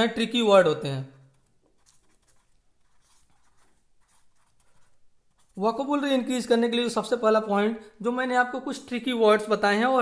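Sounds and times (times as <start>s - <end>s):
pen writing on paper: 1.4s - 5.6s.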